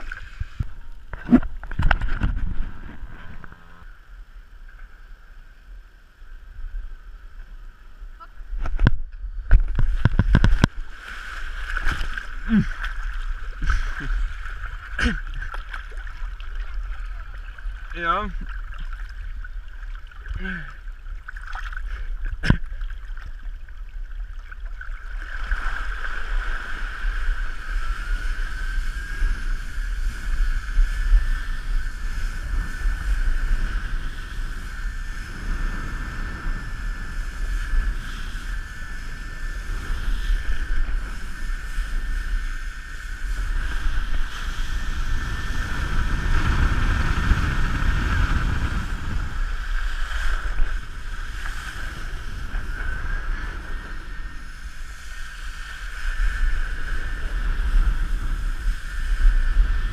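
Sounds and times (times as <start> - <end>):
water rushing under board: 0.0 - 3.9, 8.4 - 59.9
wind buffeting microphone: 0.0 - 3.9, 8.4 - 19.6, 25.5 - 59.9
steady high whine: 0.0 - 59.9.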